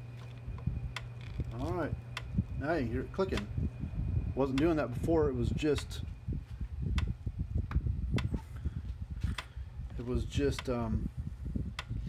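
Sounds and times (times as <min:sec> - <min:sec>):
electric fence charger clicking: 0:00.1 - 0:02.6, 0:03.2 - 0:03.6, 0:04.5 - 0:04.8, 0:06.9 - 0:08.4, 0:09.2 - 0:09.6, 0:10.5 - 0:10.8, 0:11.7 - 0:12.0.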